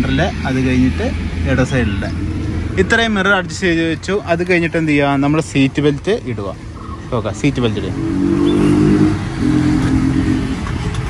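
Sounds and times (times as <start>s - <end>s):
car engine revving: 6.7s - 11.0s.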